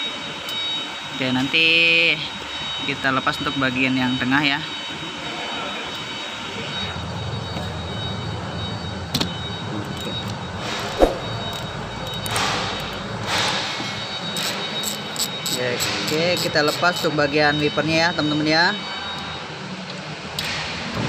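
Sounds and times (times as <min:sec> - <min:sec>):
steady mechanical hum: 0:00.0 - 0:21.0
sharp knock: 0:11.0 - 0:11.3
socket ratchet clicking: 0:14.4 - 0:17.1.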